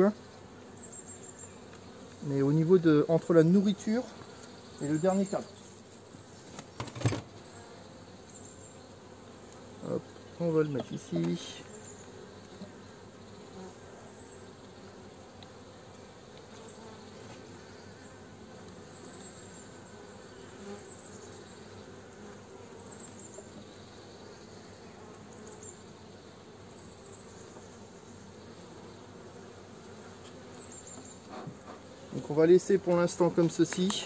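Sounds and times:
honeybees buzzing: 0:00.0 - 0:34.0.

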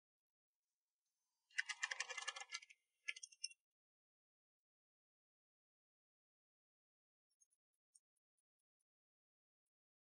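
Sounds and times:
typing on laptop keyboard: 0:01.6 - 0:02.7.

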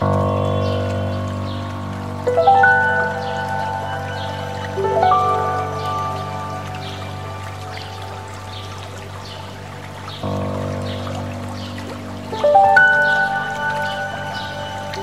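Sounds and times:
soft piano chords: 0:00.0 - 0:15.0
stream rushing: 0:00.0 - 0:15.0.

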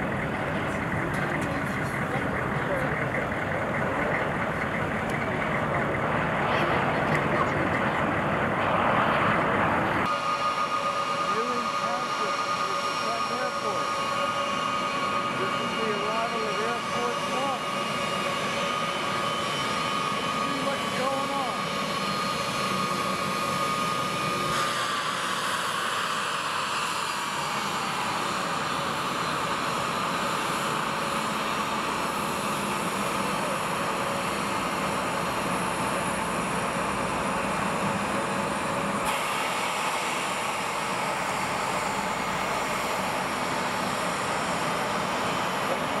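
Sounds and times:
jet engines whining: 0:00.0 - 0:46.0.

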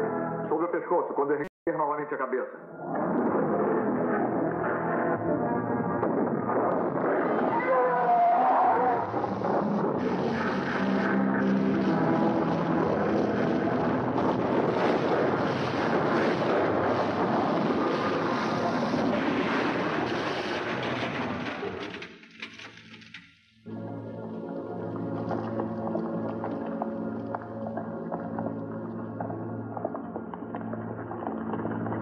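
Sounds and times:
dramatic film music: 0:02.8 - 0:18.5, 0:23.6 - 0:32.0.

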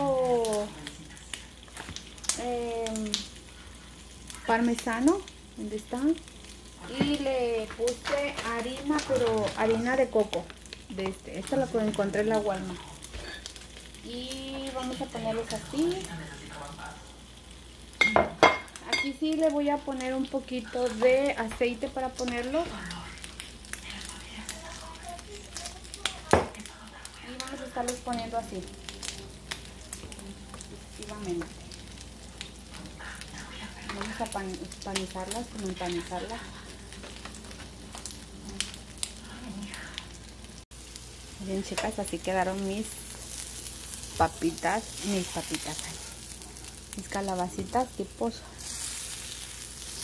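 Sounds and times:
bacon sizzling on a griddle: 0:00.0 - 0:50.0.

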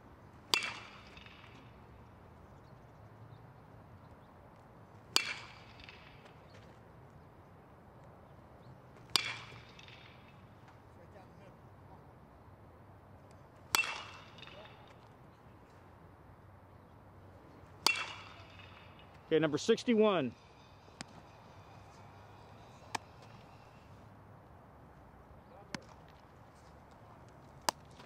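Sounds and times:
baseball bat hitting ball: 0:00.5 - 0:01.9, 0:05.1 - 0:06.4, 0:09.1 - 0:10.6, 0:13.7 - 0:15.1, 0:17.8 - 0:23.9, 0:27.6 - 0:28.0.

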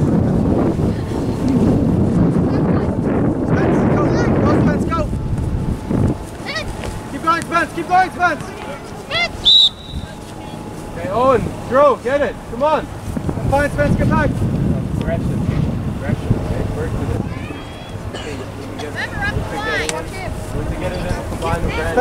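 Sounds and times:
wind buffeting microphone: 0:00.0 - 0:22.0
short high rising-and-falling calls: 0:09.1 - 0:10.2
high whistle-like tone: 0:09.4 - 0:10.2.

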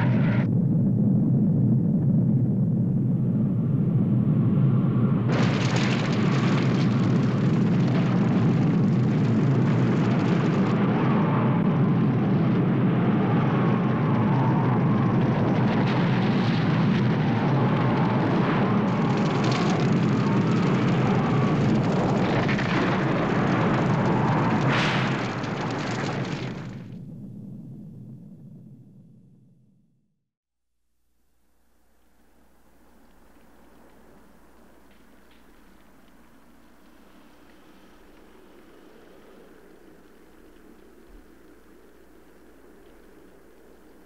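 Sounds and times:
nuclear blast rumble: 0:00.0 - 0:29.8
harsh rushing hiss of fire: 0:12.4 - 0:26.9.

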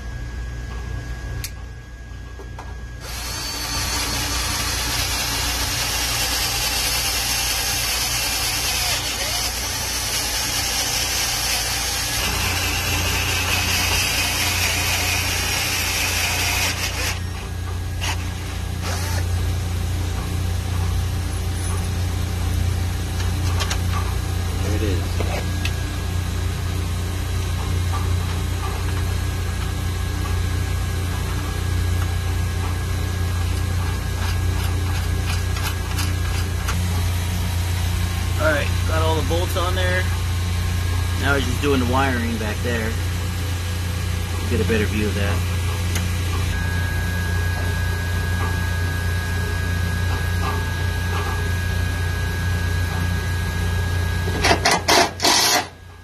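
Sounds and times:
low machinery hum: 0:00.0 - 0:56.0
power drill cutting steel: 0:03.0 - 0:17.3, 0:18.0 - 0:19.3, 0:54.4 - 0:55.8.

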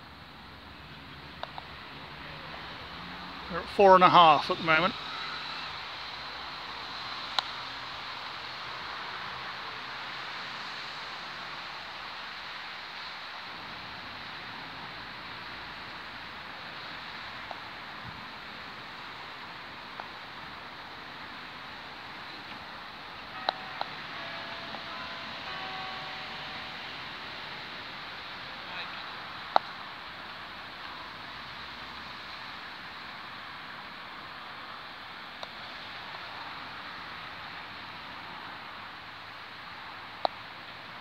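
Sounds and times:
steady outdoor hiss: 0:00.0 - 0:41.0.

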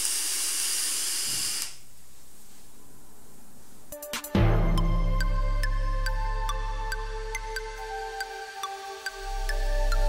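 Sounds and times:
airy hiss of vape drag: 0:00.0 - 0:01.8.

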